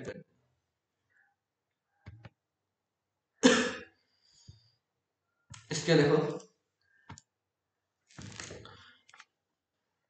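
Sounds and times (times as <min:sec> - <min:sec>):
person speaking: 0:05.6 - 0:06.5.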